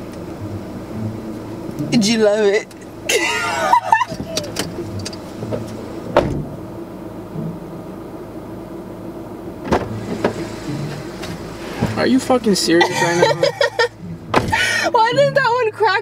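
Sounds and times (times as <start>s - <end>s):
car idling hum: 0.0s - 16.0s.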